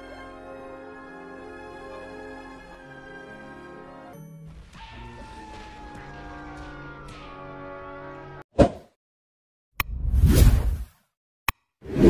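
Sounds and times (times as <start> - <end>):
whoosh: 9.9 - 10.9.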